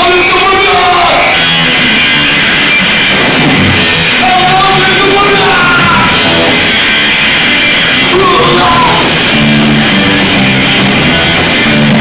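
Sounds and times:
punk band playing live: 0.0s - 12.0s.

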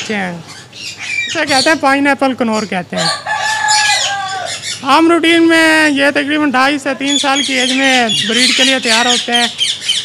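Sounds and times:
parrot squawking: 0.4s - 1.8s, 2.6s - 5.0s, 6.9s - 10.0s.

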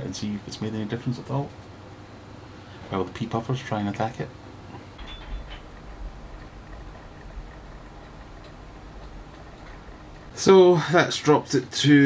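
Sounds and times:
low hum: 4.3s - 10.9s.

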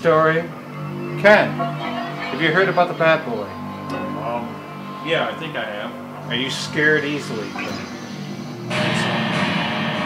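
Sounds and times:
guitar and keyboard music: 0.0s - 10.0s.

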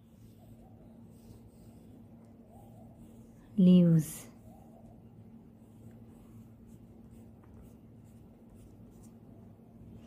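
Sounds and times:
faint low hum: 0.0s - 10.0s
pencil scratching on paper: 0.0s - 10.0s.

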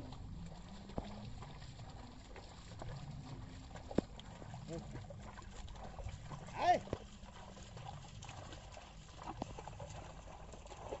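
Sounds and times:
hooves and feet splashing in mud: 0.0s - 11.0s.

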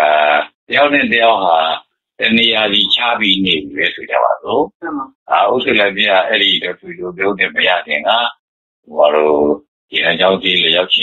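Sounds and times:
man speaking: 0.0s - 4.7s, 5.3s - 11.0s.

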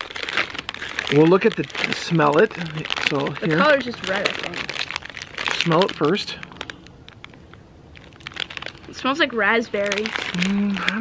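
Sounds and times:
plastic wrapper crinkling: 0.0s - 11.0s.

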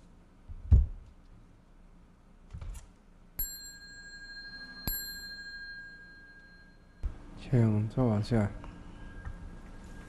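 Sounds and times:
small metal bell ringing: 3.4s - 7.0s.

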